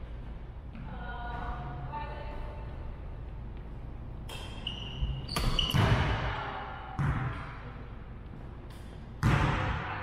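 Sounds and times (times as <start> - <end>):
shoe squeak: 4.3 - 5.9.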